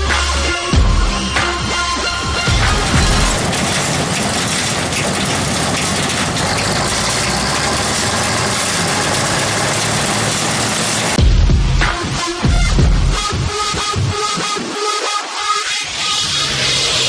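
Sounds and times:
music with steady beat: 0.0s - 3.4s, 11.2s - 15.7s
combine harvester engine running: 2.0s - 11.2s.

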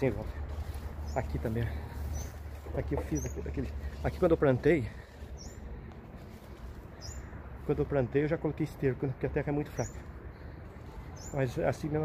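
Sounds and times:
faint high bird chirp: 10.8s - 11.5s.

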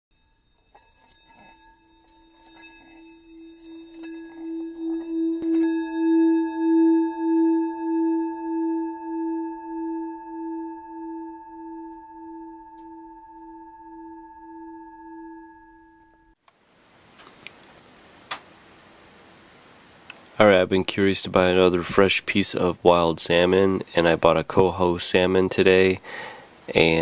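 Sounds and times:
scratchy rubbing on bowl rim: 0.1s - 6.2s
singing bowl ringing: 0.1s - 16.4s.

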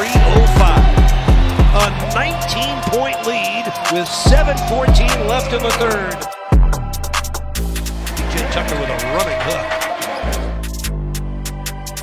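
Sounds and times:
sports commentator talking: 0.0s - 1.0s, 1.6s - 6.3s, 8.2s - 9.8s
hip-hop background music: 0.0s - 12.0s.

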